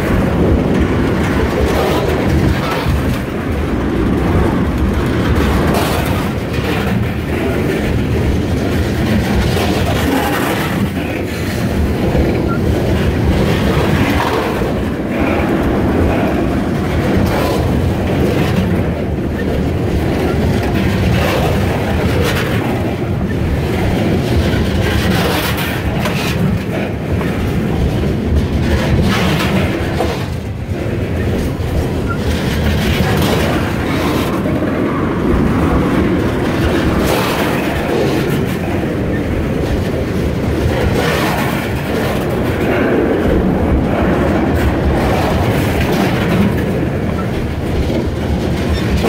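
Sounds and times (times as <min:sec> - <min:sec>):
freight train rumbling past: 0:00.0 - 0:49.0
wheels clacking over rail joints: 0:00.0 - 0:49.0.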